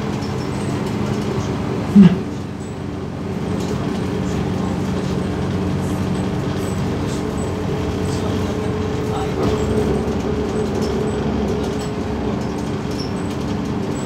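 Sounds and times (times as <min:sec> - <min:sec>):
diesel bus engine hum: 0:00.0 - 0:14.0
road and body noise: 0:00.0 - 0:14.0.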